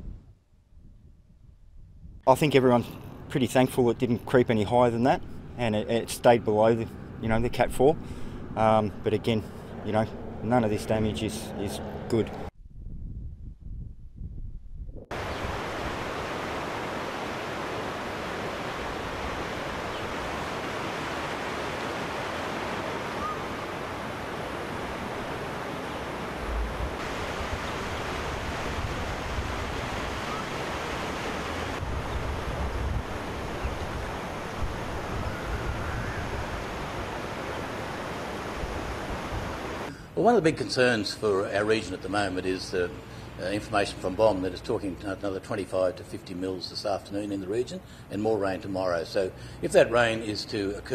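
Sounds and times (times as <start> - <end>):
wind buffeting microphone: 9.4 - 16.6, 23.1 - 39.9
floodwater rushing: 15.1 - 40.4.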